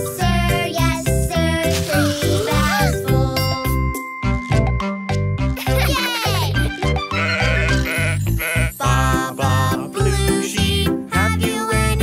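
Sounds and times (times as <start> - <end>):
children's song with bass beat: 0.0 - 12.0
cartoon sheep bleating: 7.0 - 9.2.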